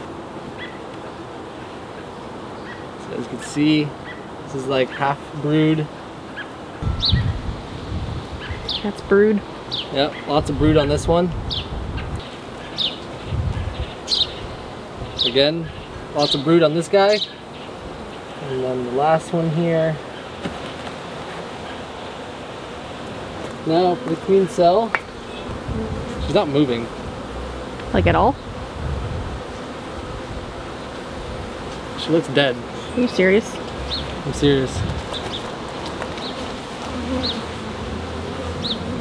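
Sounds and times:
faint outdoor hiss: 0:00.0 - 0:39.0
honeybees buzzing: 0:00.0 - 0:39.0
bird chirping: 0:06.4 - 0:07.5, 0:08.4 - 0:09.0, 0:11.5 - 0:18.5, 0:32.7 - 0:34.2
wind rumble on microphone: 0:06.8 - 0:08.7, 0:10.4 - 0:12.2, 0:13.2 - 0:15.2, 0:25.5 - 0:26.4, 0:27.8 - 0:29.5, 0:34.7 - 0:35.2.

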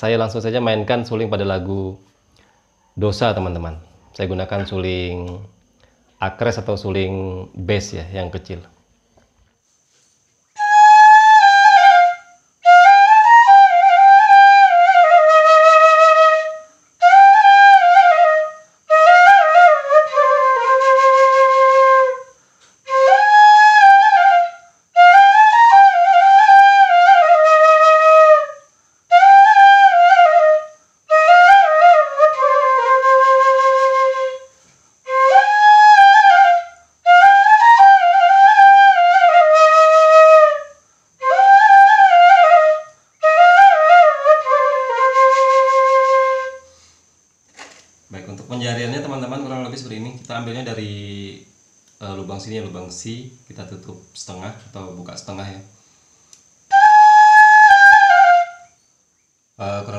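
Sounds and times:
flute player breathing: 0:02.1 - 0:02.9, 0:05.7 - 0:06.2, 0:22.2 - 0:22.9, 0:28.6 - 0:29.1, 0:30.7 - 0:31.1, 0:34.4 - 0:35.1, 0:40.7 - 0:41.2, 0:42.8 - 0:43.2, 0:46.6 - 0:47.2, 0:55.7 - 0:56.6
bamboo flute melody: 0:10.5 - 0:46.7, 0:56.7 - 0:58.8.

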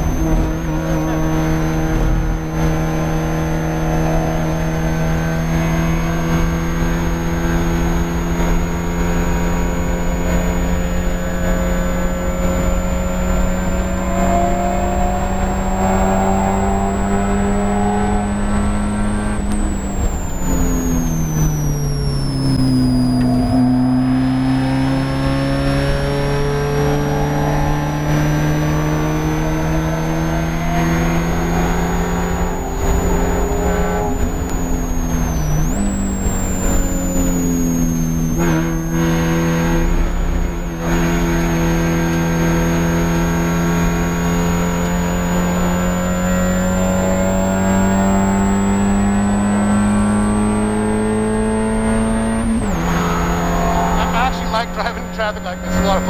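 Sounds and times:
car engine under hard driving: 0:00.0 - 0:56.0
high-pitched whine: 0:00.0 - 0:56.0.

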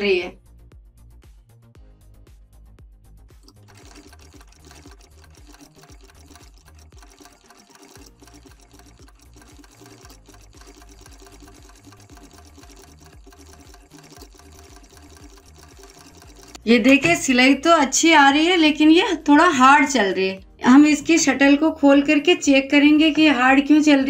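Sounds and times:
sewing machine stitching: 0:03.4 - 0:17.6.

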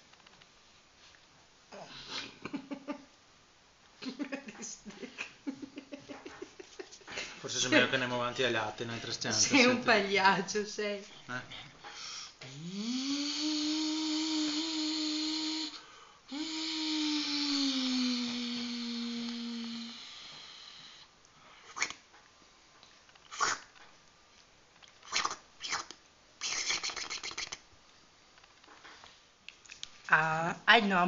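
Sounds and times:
drawn-out vocal tones: 0:12.4 - 0:21.1.

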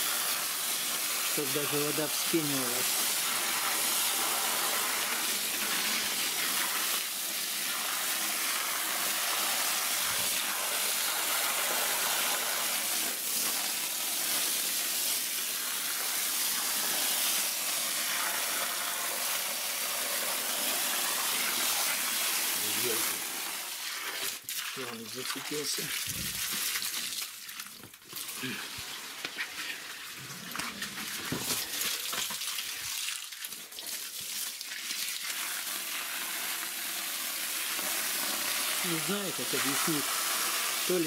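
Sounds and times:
hose water spraying on soil: 0:00.0 - 0:41.0.

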